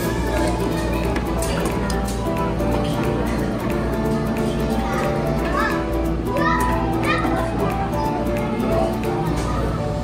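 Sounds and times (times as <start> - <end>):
background music: 0.0 - 10.0
children calling and chattering: 0.0 - 10.0.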